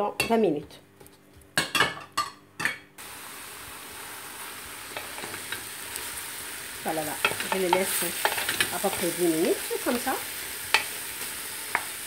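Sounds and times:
meat and onions sizzling: 0:03.0 - 0:12.0.

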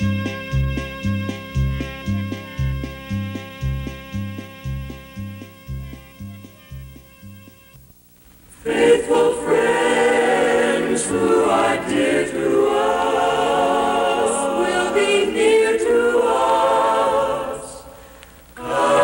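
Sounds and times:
choir singing slowly: 0:08.6 - 0:19.0.

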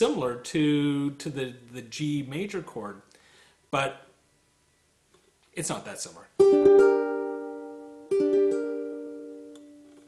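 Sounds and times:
ukulele chords strummed: 0:06.4 - 0:10.0.

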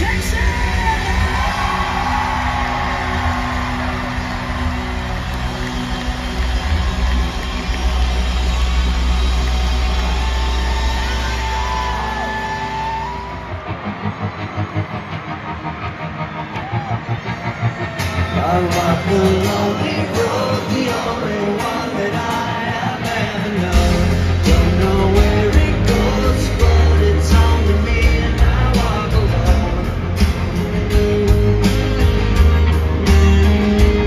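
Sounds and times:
lead singer: 0:00.0 - 0:14.3, 0:17.5 - 0:33.9
live rock band playing: 0:00.0 - 0:34.0.

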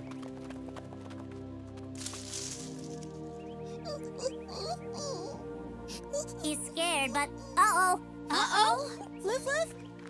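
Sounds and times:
cartoon hoofbeats clip-clop: 0:00.0 - 0:02.1
background music: 0:00.0 - 0:10.0.

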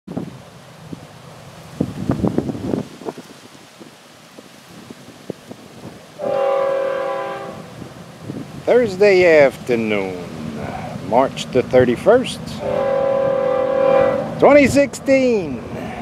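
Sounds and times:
locomotive air horn: 0:06.2 - 0:07.7, 0:12.6 - 0:14.5.

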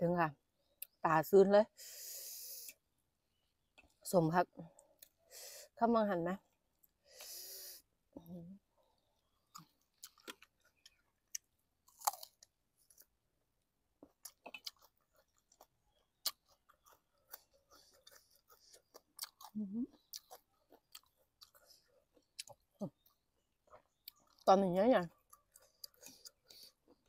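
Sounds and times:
person chewing wetly: 0:09.0 - 0:13.1, 0:14.0 - 0:24.5, 0:25.1 - 0:27.0.

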